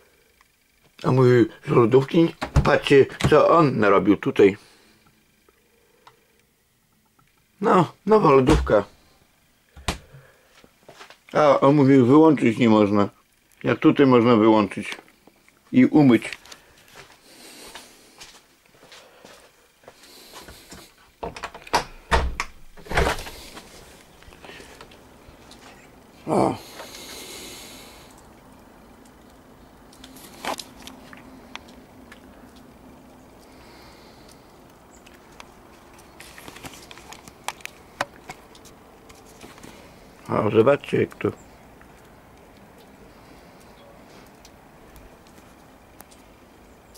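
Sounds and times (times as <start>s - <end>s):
camera handling rustling: 35.9s - 39.7s.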